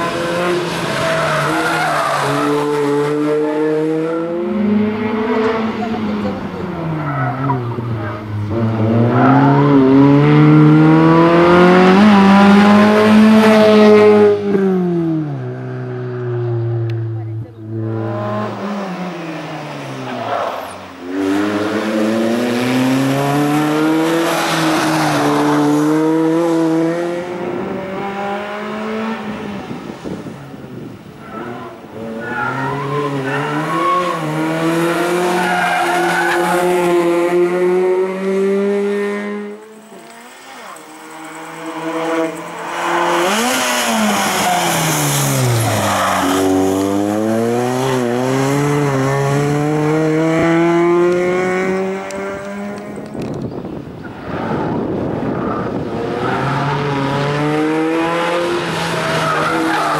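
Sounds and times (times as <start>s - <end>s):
car engine revving: 0.0s - 53.3s, 54.1s - 59.9s.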